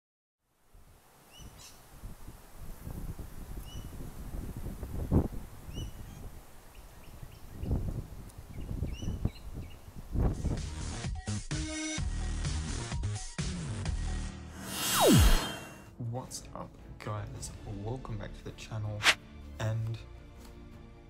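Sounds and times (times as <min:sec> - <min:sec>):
small birds chirping: 0:01.2 - 0:01.9, 0:03.6 - 0:04.0, 0:05.6 - 0:10.0
wind rumbling on microphone: 0:01.3 - 0:10.6.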